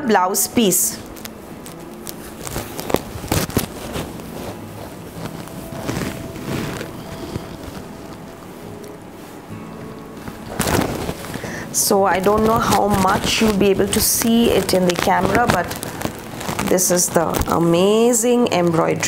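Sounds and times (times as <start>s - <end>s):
soft background music: 0.0s - 19.0s
silk cloth rustling: 0.6s - 19.0s.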